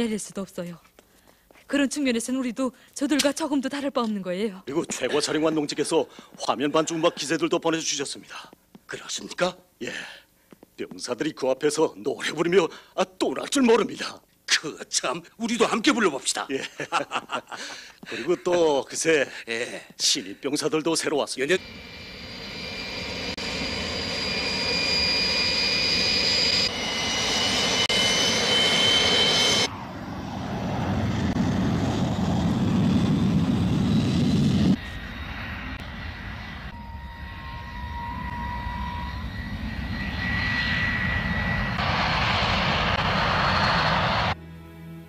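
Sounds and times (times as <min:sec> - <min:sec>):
jet engine whine and roar: 0:21.5 - 0:44.4.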